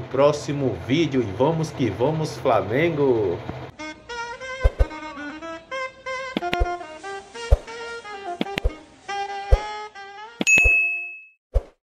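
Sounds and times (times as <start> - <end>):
notification bell ding: 10.4 - 11.4.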